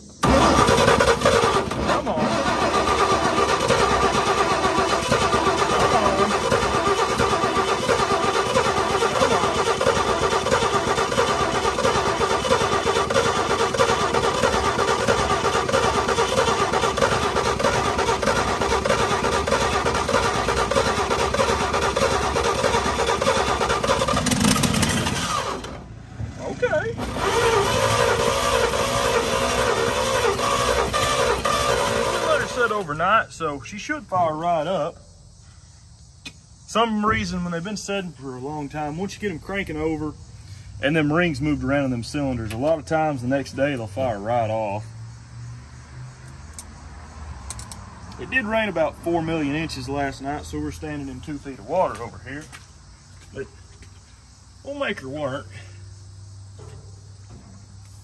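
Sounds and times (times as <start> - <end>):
truck engine cranking on starter: 0.0 - 33.8, 38.6 - 44.4.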